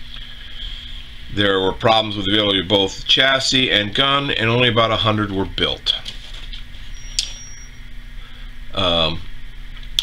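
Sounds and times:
low steady hum: 0.0s - 10.0s
thin high ringing tone: 6.8s - 8.0s.

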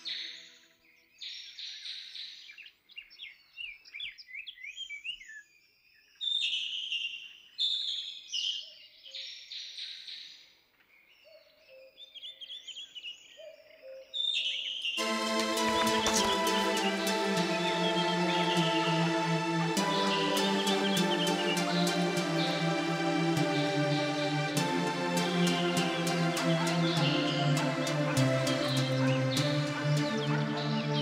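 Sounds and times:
songbirds chirping and trilling: 0.0s - 31.0s
music: 15.0s - 31.0s.

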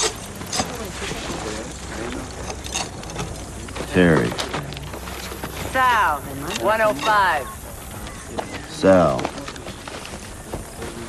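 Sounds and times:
faint voices: 0.0s - 11.0s.

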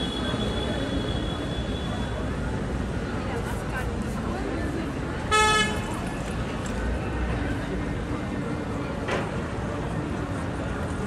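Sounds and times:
traffic: 0.0s - 11.0s.

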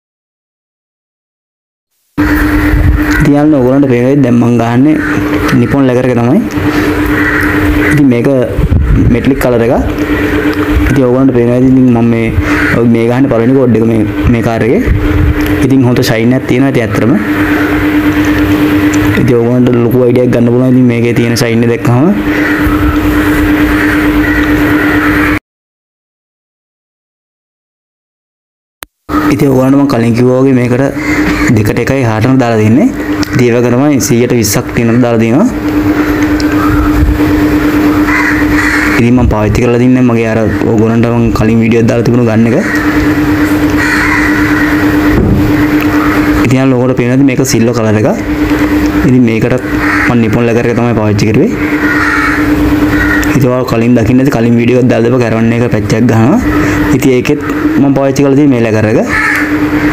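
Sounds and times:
low hum: 2.2s - 25.4s, 29.1s - 59.9s.

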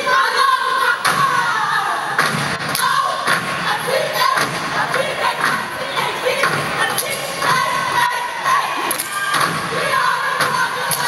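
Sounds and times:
crowd cheering: 0.0s - 11.0s
people shouting a chant: 0.0s - 11.0s
stomping and clapping: 2.2s - 7.8s, 8.8s - 9.8s.

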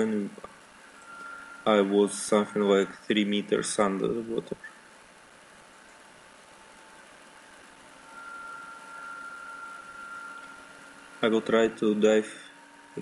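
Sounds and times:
indoor pool hum and hiss: 0.0s - 13.0s
thin high whine: 0.0s - 13.0s.

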